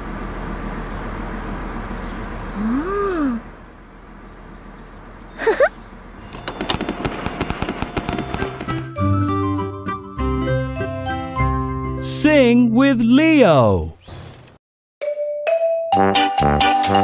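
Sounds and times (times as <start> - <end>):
outdoor ambience: 0.0 - 8.9
balls tumbling and bouncing: 6.3 - 8.9.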